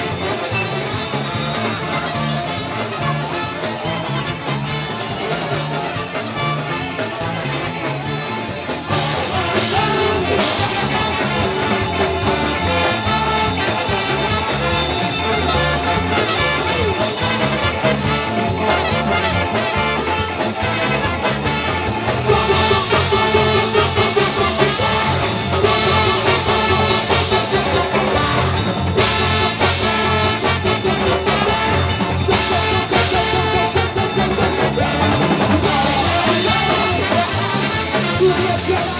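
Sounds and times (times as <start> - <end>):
electric guitar: 0.0 - 38.9
ska band playing: 0.0 - 38.9.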